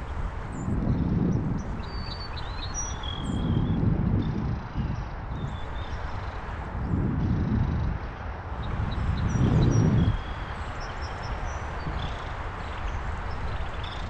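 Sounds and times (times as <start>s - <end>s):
small birds chirping: 0.0s - 14.0s
wind buffeting microphone: 0.0s - 14.0s
bicycle riding hiss: 5.4s - 6.9s, 8.1s - 14.0s.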